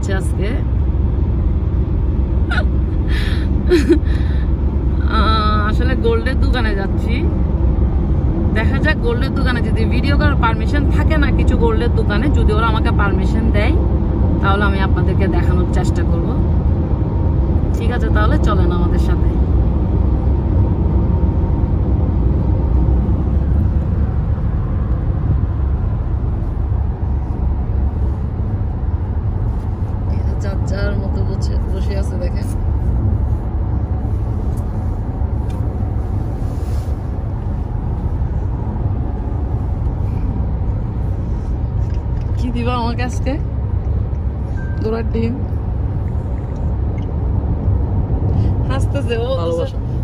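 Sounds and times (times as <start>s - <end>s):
car road and engine rumble: 0.0s - 50.0s.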